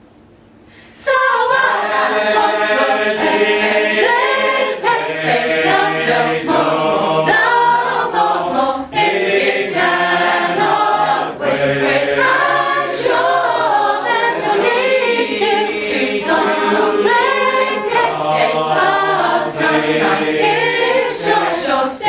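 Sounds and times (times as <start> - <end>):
a cappella choir singing: 0.8 - 22.0.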